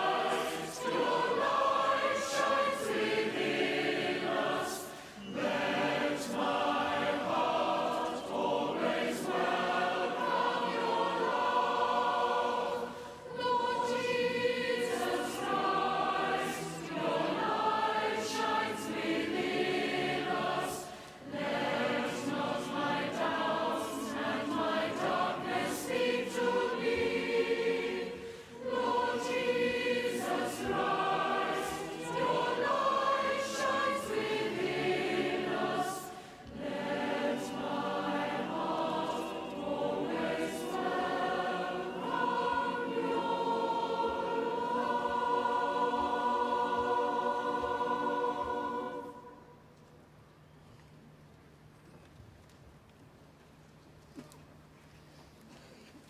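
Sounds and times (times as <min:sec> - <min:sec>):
choir singing a hymn: 0:00.0 - 0:49.7.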